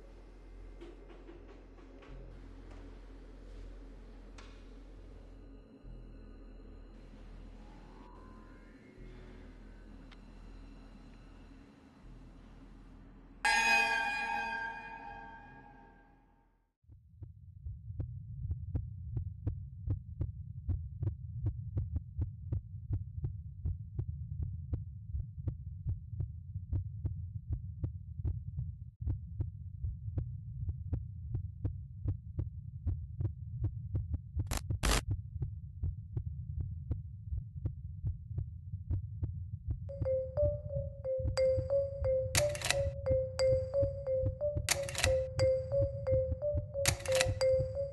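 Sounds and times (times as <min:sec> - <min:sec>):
sharp heartbeat-like ticks: 0:17.2 - 0:47.9.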